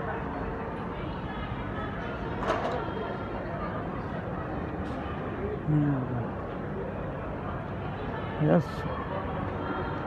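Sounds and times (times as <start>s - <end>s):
airport terminal rumble and hum: 0.0s - 10.0s.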